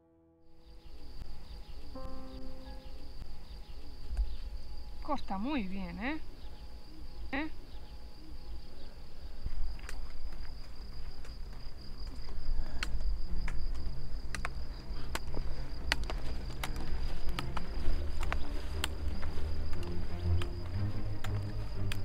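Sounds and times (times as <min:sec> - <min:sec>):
soft music: 0:00.0 - 0:08.8, 0:13.1 - 0:22.0
crickets chirring: 0:00.5 - 0:22.0
trekking poles striking dirt: 0:09.8 - 0:22.0.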